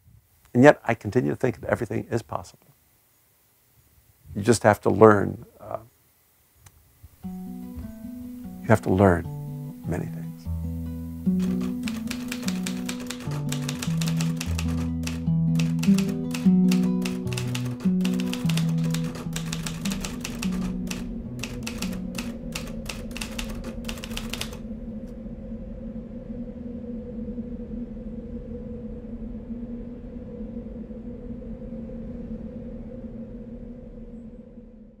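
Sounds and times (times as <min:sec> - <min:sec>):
typewriter keys clacking: 0:11.4 - 0:24.6.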